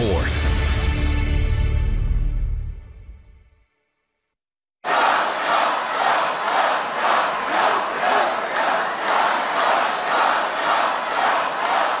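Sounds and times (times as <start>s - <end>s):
crowd chanting rhythmically: 4.8s - 12.0s.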